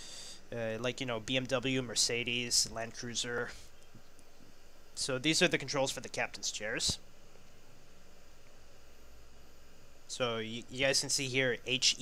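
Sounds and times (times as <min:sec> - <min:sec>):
faint steady hiss: 0:00.0 - 0:12.0
low hum: 0:00.0 - 0:12.0.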